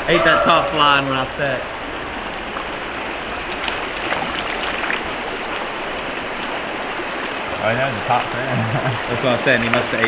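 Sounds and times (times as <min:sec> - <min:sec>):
fast-flowing river rushing: 0:00.0 - 0:10.0
light water splashes: 0:00.0 - 0:10.0.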